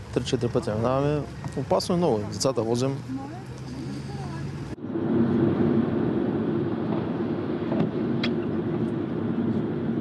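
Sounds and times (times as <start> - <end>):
heavy lorries: 0.0 - 10.0
highway traffic passing: 0.0 - 10.0.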